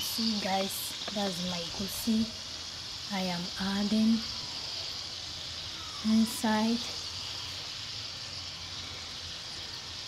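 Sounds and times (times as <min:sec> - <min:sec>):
oil sizzling in a pot: 0:00.0 - 0:10.0.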